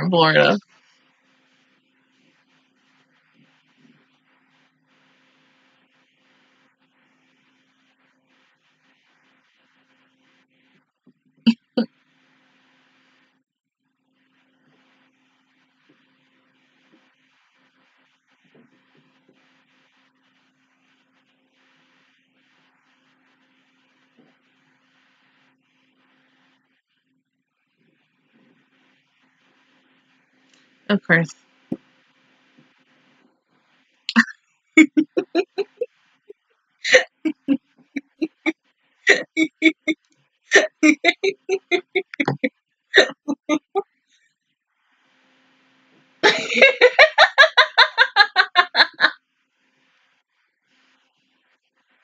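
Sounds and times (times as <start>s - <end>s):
low steady hum: 0.0s - 8.0s, 39.1s - 43.8s
faint recording hiss: 0.0s - 52.0s
woman laughing: 34.8s - 35.9s, 36.9s - 38.5s, 39.1s - 43.8s, 46.2s - 49.1s.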